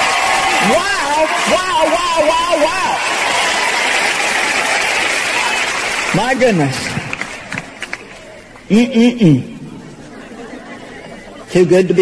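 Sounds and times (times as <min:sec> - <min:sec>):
audience applause: 0:00.0 - 0:08.7.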